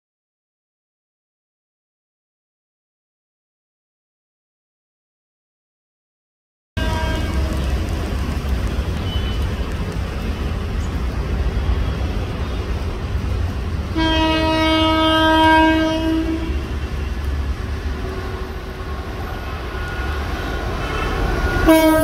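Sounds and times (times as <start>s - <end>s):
locomotive horn blast: 6.8s - 7.9s, 13.9s - 17.2s, 18.0s - 22.0s.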